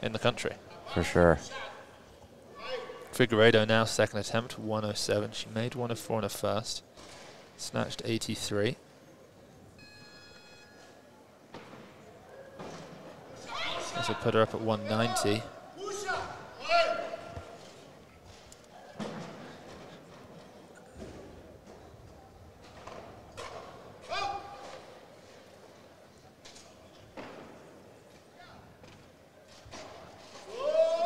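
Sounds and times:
shouts of encouragement: 0:30.5 - 0:31.0.

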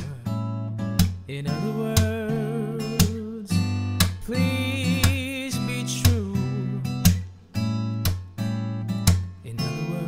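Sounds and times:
fingerpicked acoustic guitar chords: 0:00.0 - 0:10.0.

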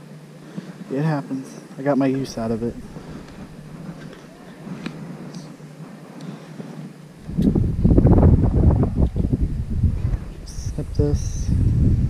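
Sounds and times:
wind buffeting microphone: 0:02.1 - 0:06.1, 0:06.8 - 0:12.0.

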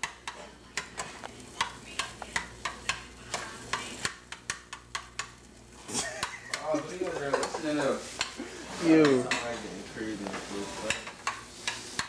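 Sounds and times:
eggs sizzling: 0:00.0 - 0:12.0
metal spoon scraping frying pan: 0:10.5 - 0:12.0.

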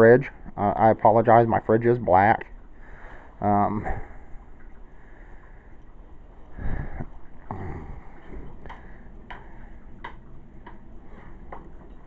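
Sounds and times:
faint low hum: 0:00.0 - 0:12.0
light irregular clicks: 0:08.2 - 0:12.0.

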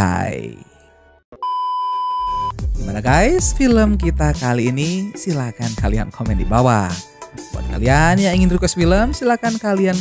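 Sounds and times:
electronic beep: 0:01.4 - 0:02.6
music with low bass: 0:02.4 - 0:04.6, 0:05.8 - 0:06.7, 0:07.4 - 0:09.2.

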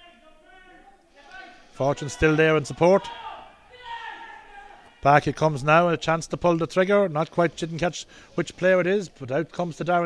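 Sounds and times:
faint field ambience: 0:00.0 - 0:10.0.

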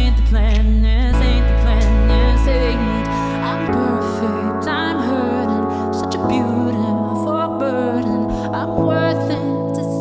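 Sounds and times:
man singing pop ballad: 0:00.0 - 0:10.0
sustained chords: 0:01.1 - 0:10.0.

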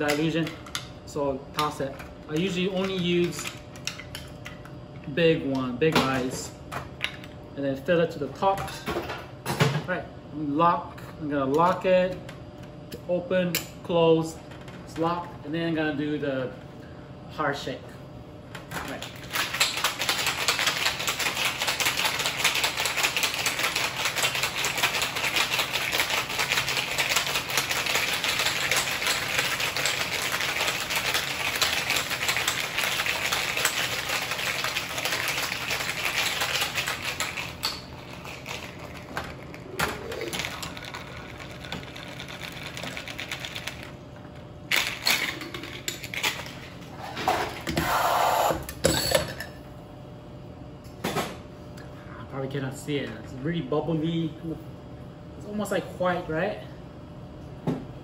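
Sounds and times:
ice rattling in cocktail shaker: 0:19.3 - 0:43.9.

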